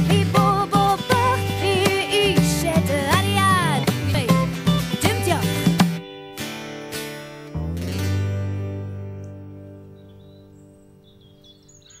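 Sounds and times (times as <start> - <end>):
acoustic guitar chord ringing: 0.0 - 11.4
small birds chirping: 3.6 - 7.1, 9.7 - 12.0.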